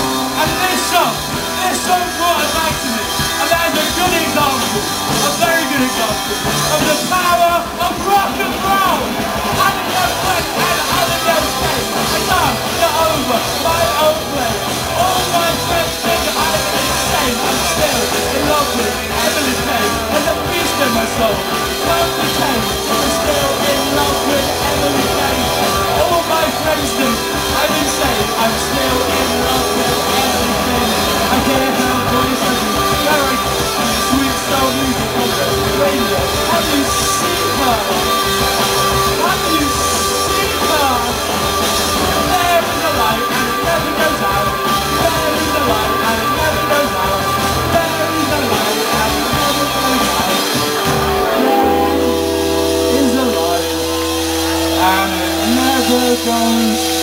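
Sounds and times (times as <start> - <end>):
live rock band playing: 0.0 - 57.0
person singing: 0.0 - 57.0.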